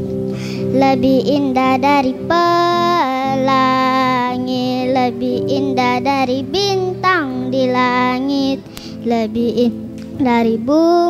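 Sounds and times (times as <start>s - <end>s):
girl singing into a microphone: 0.0s - 11.0s.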